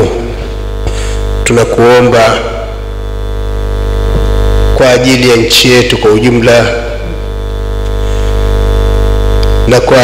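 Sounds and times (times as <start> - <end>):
electrical mains buzz: 0.0 - 10.0.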